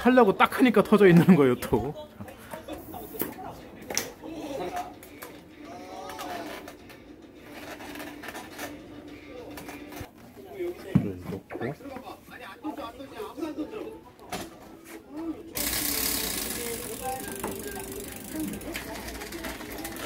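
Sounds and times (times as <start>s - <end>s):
faint voices talking: 8.8s - 20.0s.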